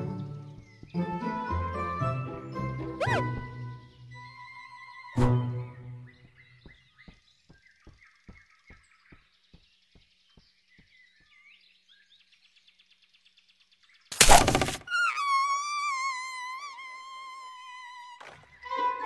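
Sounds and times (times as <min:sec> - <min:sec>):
high wavering whistle-like cry: 0:03.0 - 0:03.4, 0:14.8 - 0:18.7
faint bird chirps: 0:03.0 - 0:18.8.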